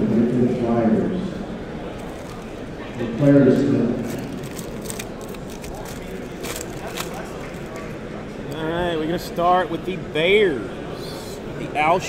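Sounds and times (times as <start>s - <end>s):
foil wrappers crinkling: 2.0s - 2.6s, 4.0s - 8.0s.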